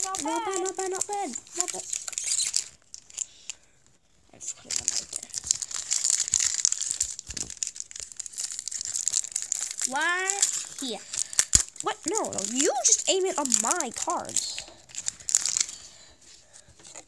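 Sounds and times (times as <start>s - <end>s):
foil wrappers crinkling: 0.0s - 3.6s, 4.4s - 17.0s.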